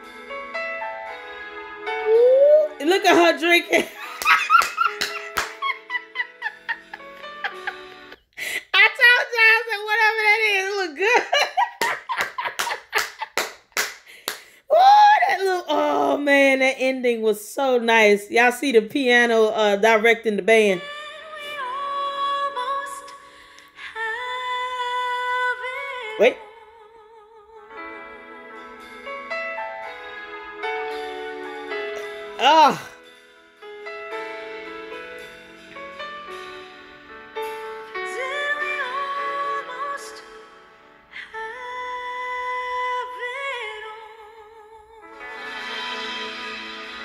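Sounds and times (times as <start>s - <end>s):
voice sweeping up in pitch: 2.0s - 2.8s
woman laughing: 2.1s - 8.8s, 11.0s - 13.5s.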